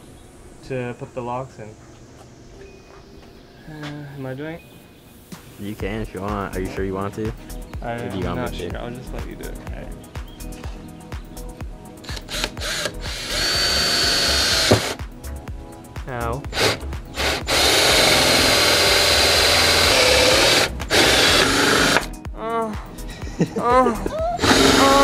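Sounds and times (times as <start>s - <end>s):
hole saw grinding through metal: 12.0s - 15.0s, 16.6s - 22.1s.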